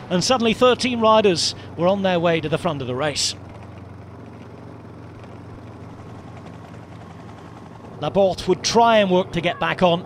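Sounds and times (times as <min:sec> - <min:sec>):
race vehicle engines droning: 0:00.0 - 0:10.0.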